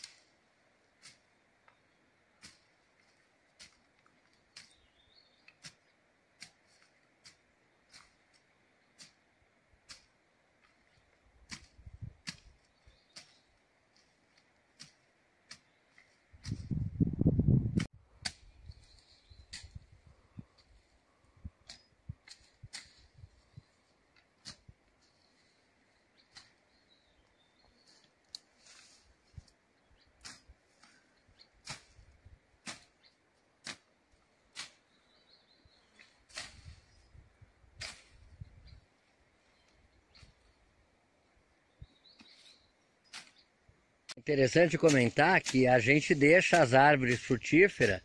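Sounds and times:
distant machete chopping brush: 0:32.6 - 0:33.0.

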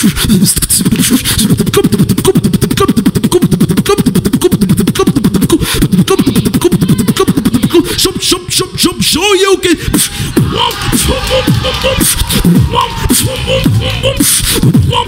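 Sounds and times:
beatboxing through a microphone: 0:00.0 - 0:15.0.

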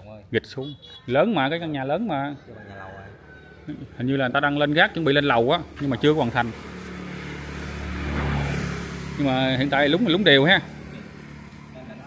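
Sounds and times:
vehicle engine passing by: 0:03.8 - 0:12.0.

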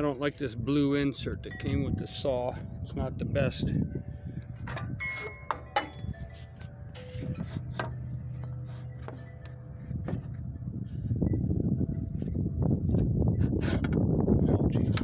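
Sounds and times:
metal clamp clinking on metal: 0:04.6 - 0:06.4.

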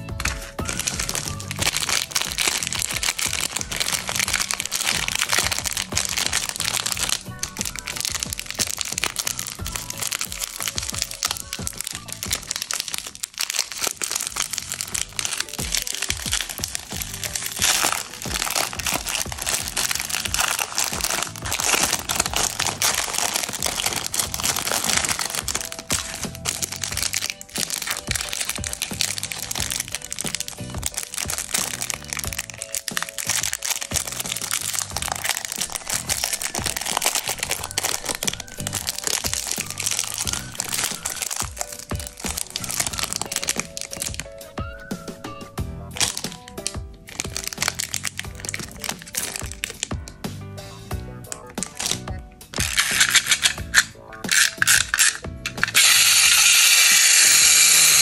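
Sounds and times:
cellophane bag crinkling: 0:00.0 - 0:45.2, 0:45.8 - 0:50.1, 0:51.3 - 0:58.0
plastic wrapper crinkling: 0:00.0 - 0:50.2, 0:51.2 - 0:58.0
background music: 0:00.0 - 0:58.0.

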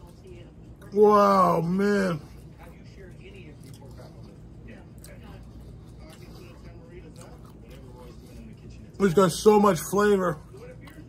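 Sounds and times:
man chewing crunchy food: 0:00.0 - 0:11.0.

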